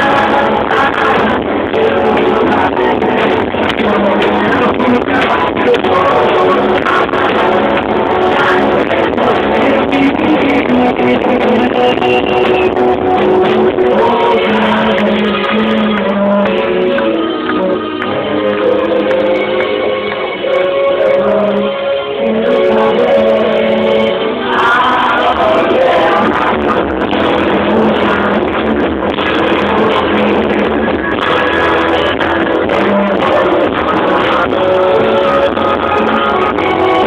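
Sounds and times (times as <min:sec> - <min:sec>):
electric guitar: 0:00.0 - 0:37.0
rock band playing live: 0:00.0 - 0:37.0.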